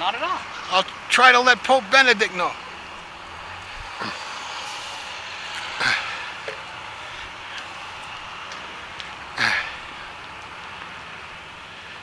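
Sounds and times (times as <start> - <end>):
distant traffic: 0.0 - 12.0.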